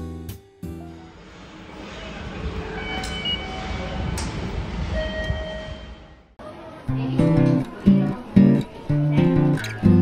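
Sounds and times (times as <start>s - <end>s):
train rumble: 0.8s - 6.4s.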